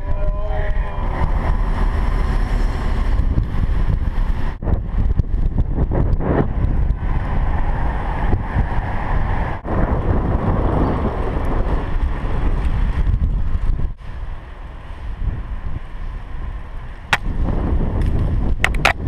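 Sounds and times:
bicycle road noise rumble: 0:00.0 - 0:19.0
wind buffeting microphone: 0:00.0 - 0:19.0.

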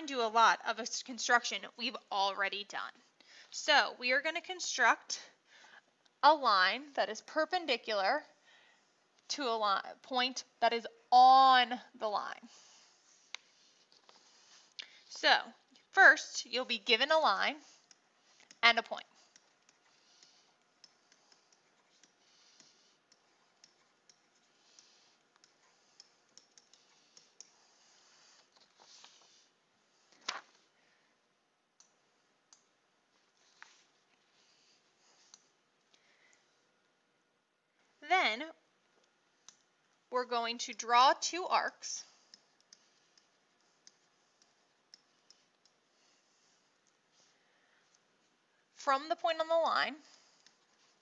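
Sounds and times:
stylus tapping on tablet screen: 0:19.2 - 0:28.0.

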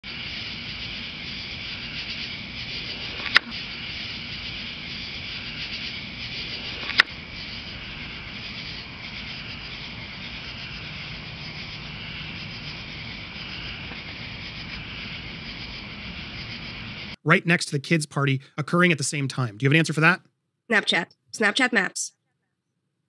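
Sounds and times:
crickets and insects chirping: 0:00.0 - 0:20.2
sharp click: 0:03.2 - 0:03.5.

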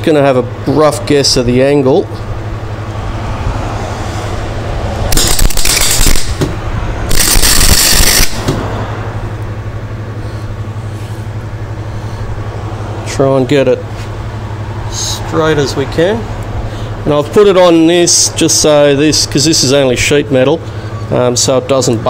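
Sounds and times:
low hum: 0:00.0 - 0:17.0
welding arc crackling: 0:05.0 - 0:08.5.

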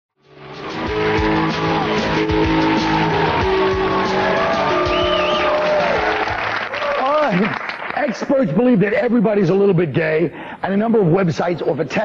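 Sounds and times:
steady drumbeat: 0:00.7 - 0:06.5.

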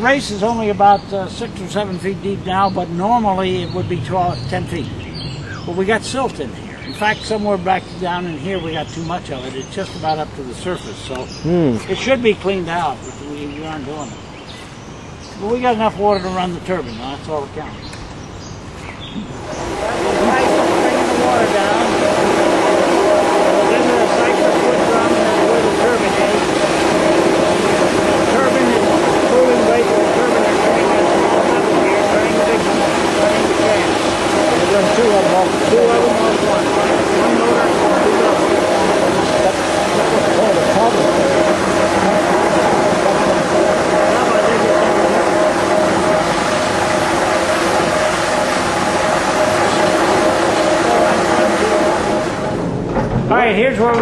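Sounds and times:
voices murmuring: 0:07.0 - 0:14.2, 0:19.1 - 0:52.4
water turbine machinery humming: 0:19.1 - 0:54.0.

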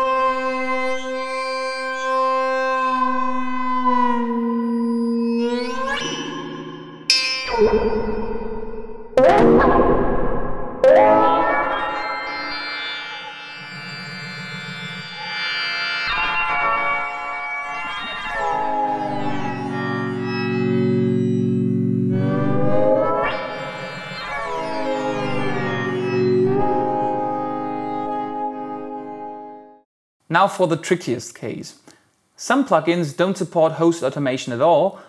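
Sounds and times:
bell-like synthesizer chords: 0:04.6 - 0:09.2, 0:10.8 - 0:29.6.

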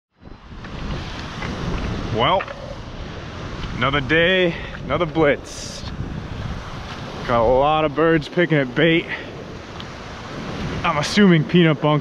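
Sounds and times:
wind buffeting microphone: 0:00.1 - 0:12.0
surf breaking on rocks: 0:00.4 - 0:12.0.

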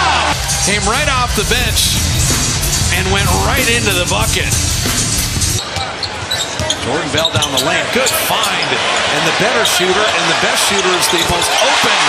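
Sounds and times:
arena music: 0:00.3 - 0:05.8.

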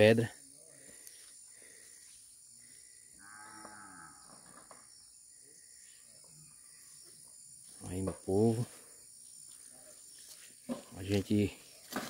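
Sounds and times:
faint cow mooing: 0:03.2 - 0:04.4.

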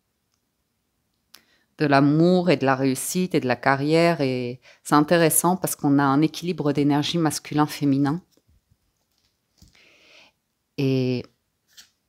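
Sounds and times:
woman speaking: 0:01.8 - 0:08.3, 0:10.8 - 0:11.4.

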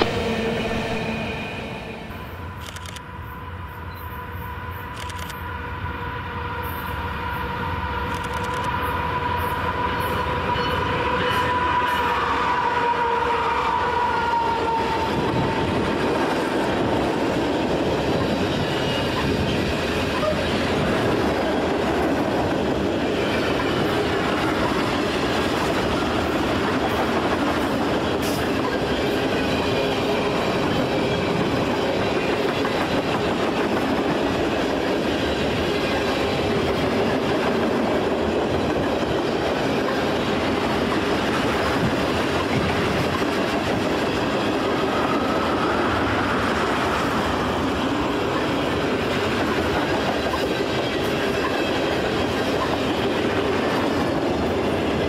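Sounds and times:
locomotive whine: 0:00.0 - 0:55.0
train wheel clatter: 0:14.7 - 0:55.0.

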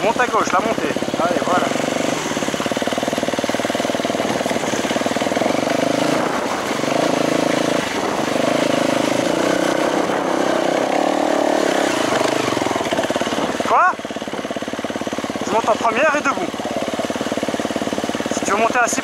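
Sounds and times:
dirt bike engine under throttle: 0:00.0 - 0:19.0.

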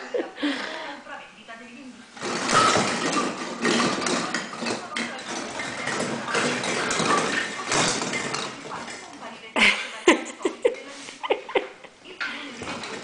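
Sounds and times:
baubles clinking together: 0:02.2 - 0:09.1.

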